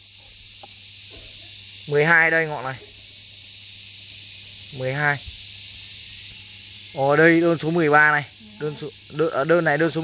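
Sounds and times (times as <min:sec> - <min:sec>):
high-pitched hiss: 0:00.0 - 0:10.0.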